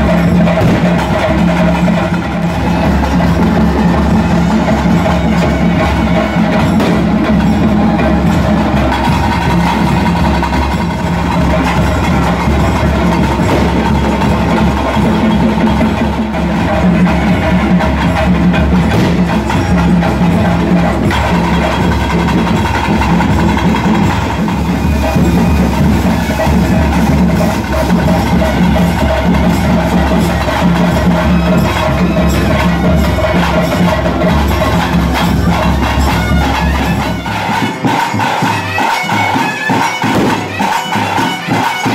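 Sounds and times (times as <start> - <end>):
rapid drumming and percussion: 0.0 - 41.9.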